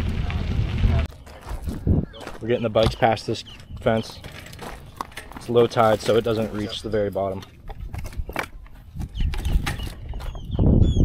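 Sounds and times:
bird chirps: 0:02.0 - 0:05.0, 0:09.0 - 0:11.0
bicycles clanking on chain-link fence: 0:03.8 - 0:08.5.

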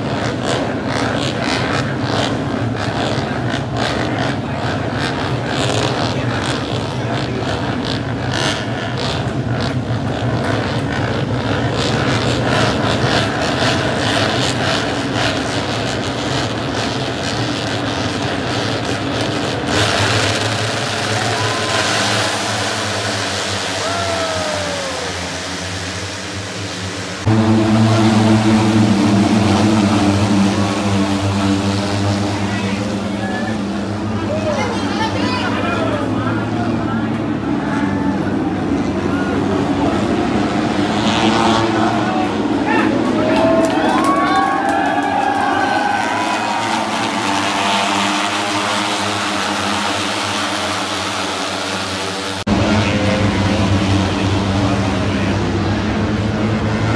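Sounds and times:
racing motorcycle engines: 0:00.0 - 0:56.9.

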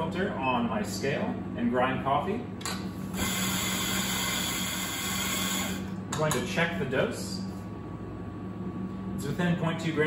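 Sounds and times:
coffee grinder motor whirring: 0:03.2 - 0:05.9.

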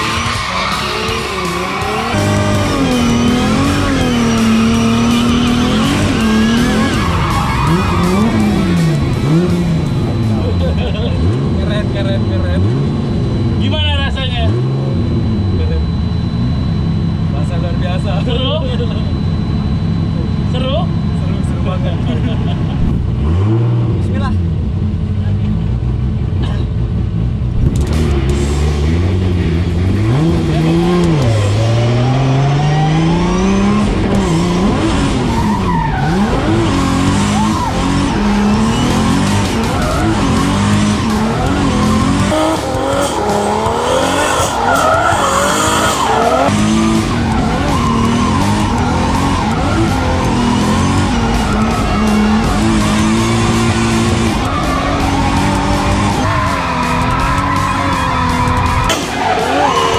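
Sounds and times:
tyres squealing: 0:00.0 - 0:10.4, 0:34.1 - 0:59.9
car engine revving: 0:00.0 - 0:59.9.

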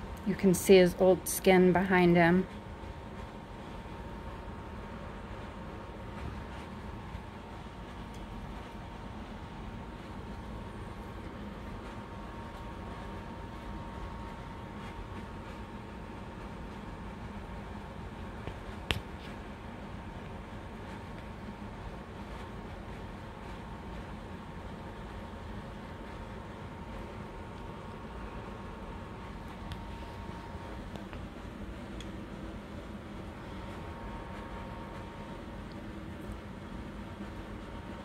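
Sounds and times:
fan or air conditioning noise: 0:00.0 - 0:38.0.

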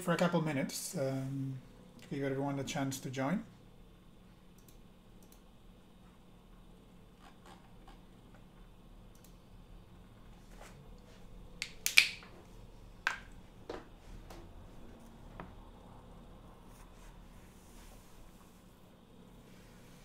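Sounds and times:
sharp clicks and snaps: 0:04.6 - 0:05.5, 0:11.6 - 0:12.3.

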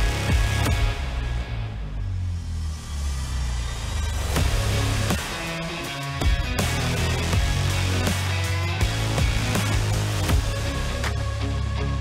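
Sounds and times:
background music with deep bass: 0:00.0 - 0:12.0.

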